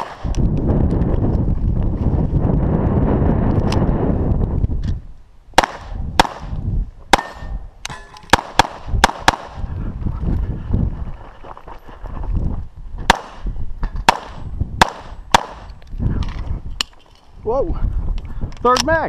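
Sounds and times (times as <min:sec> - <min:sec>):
pistol shots: 0:05.6 - 0:07.6, 0:08.3 - 0:09.6, 0:13.1 - 0:15.7.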